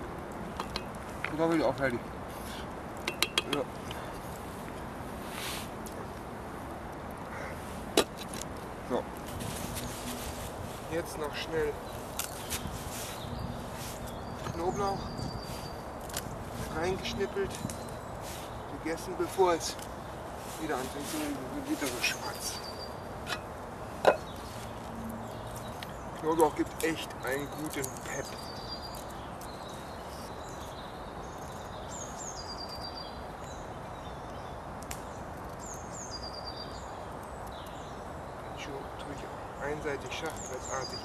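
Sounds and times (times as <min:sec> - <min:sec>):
wooden spoon tapping metal pot: 0:03.0 - 0:03.7.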